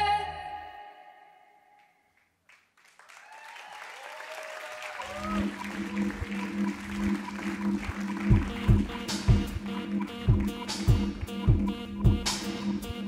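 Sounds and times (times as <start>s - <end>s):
audience applause and cheering: 2.4s - 11.1s.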